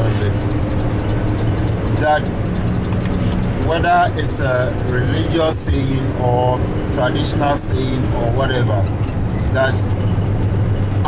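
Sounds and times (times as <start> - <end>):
minibus engine and road noise: 0.0 - 11.0.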